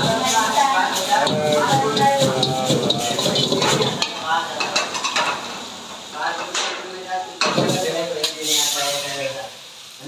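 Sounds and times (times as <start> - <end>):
food sizzling: 0.0 - 10.0
metal ladle scraping a wok: 0.1 - 5.3.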